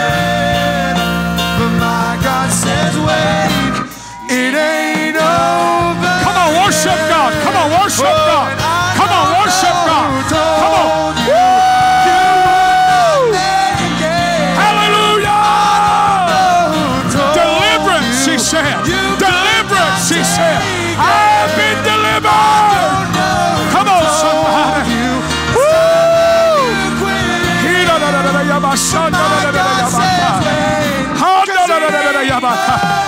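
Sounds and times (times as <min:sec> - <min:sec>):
keyboard: 0:00.0 - 0:33.0
electric guitar: 0:09.7 - 0:31.2.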